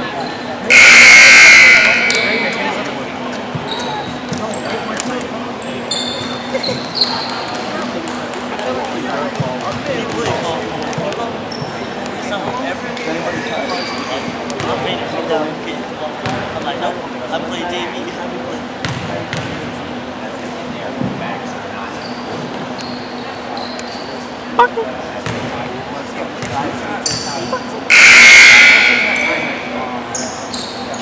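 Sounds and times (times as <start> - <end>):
sneaker squeaks: 0.2 - 4.8, 5.6 - 7.6, 11.5 - 11.9, 13.6 - 14.8, 21.9 - 25.4, 26.4 - 31.0
loud shrill blast: 0.7 - 2.9, 27.9 - 30.1.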